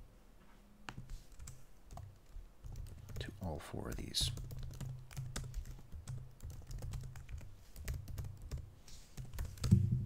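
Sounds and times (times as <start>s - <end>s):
typing on computer keyboard: 1.3s - 3.3s, 3.9s - 8.6s, 9.2s - 9.8s.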